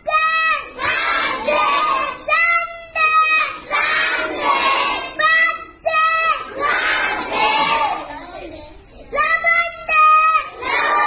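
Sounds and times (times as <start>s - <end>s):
children chanting in unison: 0.0s - 8.4s, 9.0s - 11.0s.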